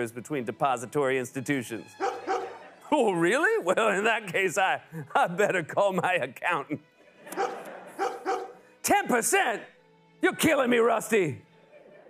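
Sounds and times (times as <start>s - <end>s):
dog-like barks: 2.0s - 2.6s, 7.3s - 8.6s.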